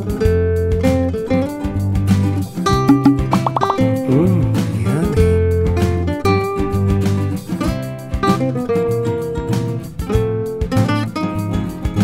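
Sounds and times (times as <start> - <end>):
background music: 1.5 - 7.5.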